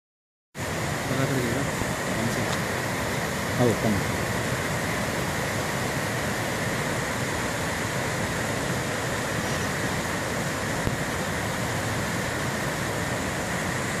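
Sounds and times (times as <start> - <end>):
stream rushing over rocks: 0.6 - 14.0.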